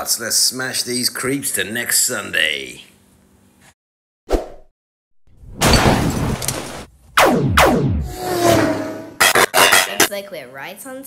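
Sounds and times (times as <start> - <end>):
sharp impacts: 5.4 - 8.5
sci-fi blast: 5.6 - 9.4.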